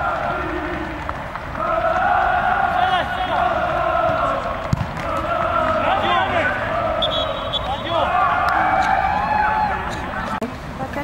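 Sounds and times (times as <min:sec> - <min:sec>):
men shouting: 0:01.6 - 0:10.2.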